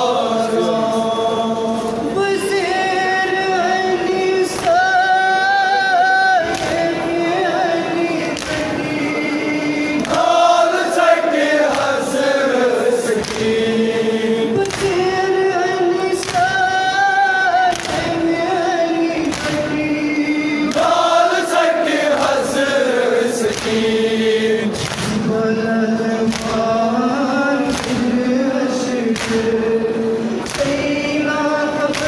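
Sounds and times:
men chanting a mourning lament: 0:00.0 - 0:32.0
chest-beating slaps: 0:08.4 - 0:08.7, 0:13.1 - 0:13.6, 0:14.6 - 0:15.0, 0:19.2 - 0:19.8, 0:24.7 - 0:25.2, 0:26.3 - 0:26.7, 0:29.1 - 0:29.5, 0:30.4 - 0:31.0.

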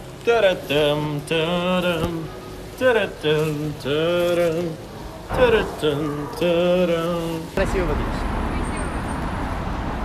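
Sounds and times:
road traffic rumble: 0:00.8 - 0:10.0
cars passing: 0:04.8 - 0:10.0.

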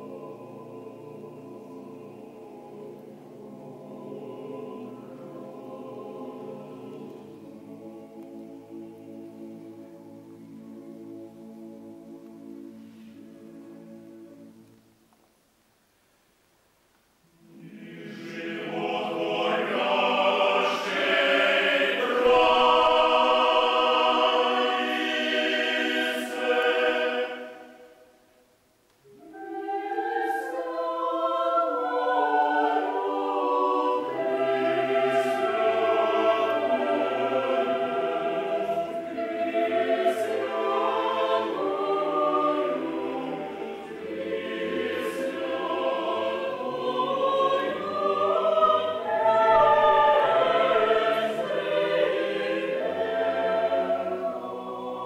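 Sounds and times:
choir singing chant a cappella: 0:00.0 - 0:14.6, 0:17.4 - 0:28.2, 0:29.1 - 0:55.0.

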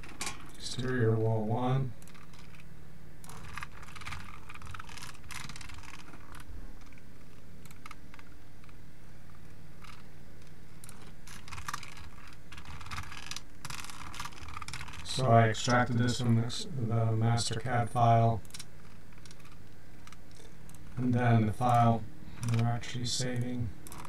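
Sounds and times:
faint low hum: 0:00.0 - 0:24.0
computer keyboard typing: 0:03.3 - 0:07.0, 0:10.8 - 0:15.0.

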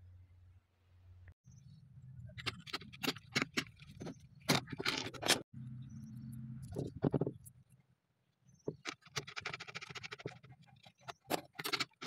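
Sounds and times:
tools clicking and rattling: 0:08.7 - 0:12.0.

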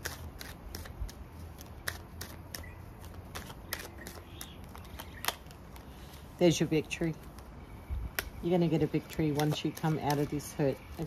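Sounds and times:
cards shuffling and snapping: 0:00.0 - 0:06.2, 0:08.1 - 0:10.6.

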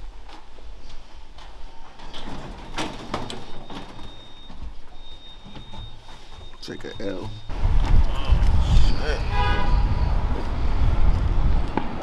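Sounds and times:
elevator doors sliding: 0:01.0 - 0:08.8.

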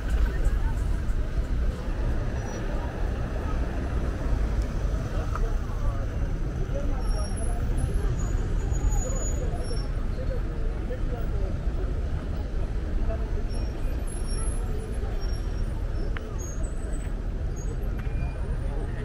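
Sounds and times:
many people talking: 0:00.0 - 0:19.0
passing car traffic: 0:00.0 - 0:19.0.

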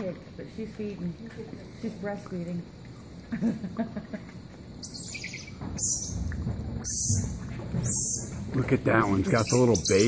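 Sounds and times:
monkeys chirping: 0:04.8 - 0:08.4, 0:09.0 - 0:10.0.

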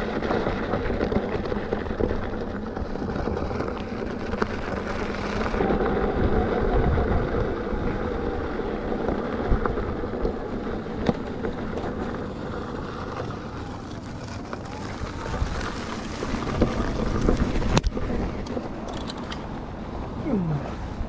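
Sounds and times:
scooter tyres rumbling on dirt: 0:00.0 - 0:21.0
wind on microphone: 0:05.4 - 0:10.8, 0:14.7 - 0:21.0.

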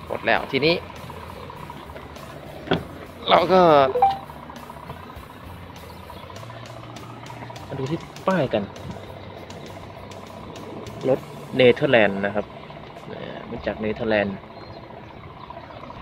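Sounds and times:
truck engine idling: 0:00.0 - 0:16.0.

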